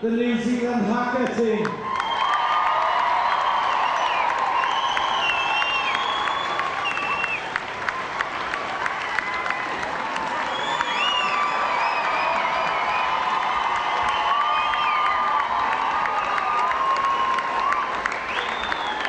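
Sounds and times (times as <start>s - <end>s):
crowd cheering and applauding: 1.2s - 19.0s
high gliding whistles: 3.8s - 7.4s, 10.5s - 13.2s.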